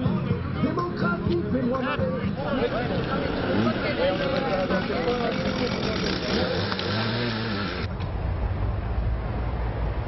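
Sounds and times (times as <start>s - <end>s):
people talking and calling: 0.0s - 7.9s
street noise: 0.0s - 10.0s
vehicle engine passing: 2.3s - 8.7s.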